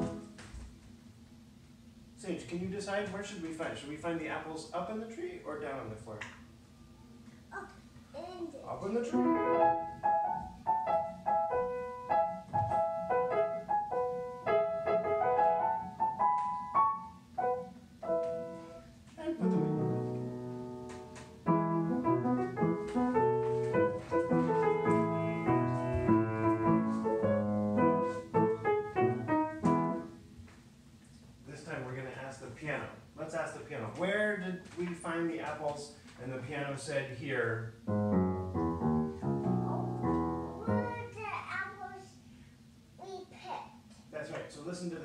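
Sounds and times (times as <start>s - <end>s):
upright piano playing: 0.0s - 0.4s, 9.0s - 30.3s, 37.8s - 41.2s.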